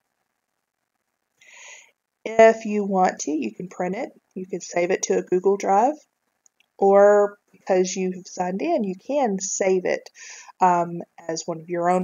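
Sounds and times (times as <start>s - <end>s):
soft intake of breath: 1.4s - 1.9s.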